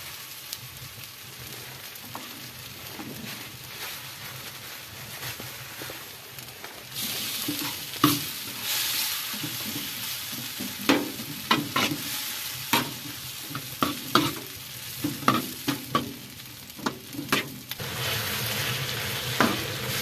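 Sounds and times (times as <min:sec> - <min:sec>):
chicken sizzling in a pan: 0:00.0 - 0:20.0
utensil scraping a pan: 0:07.0 - 0:16.1, 0:16.8 - 0:17.7.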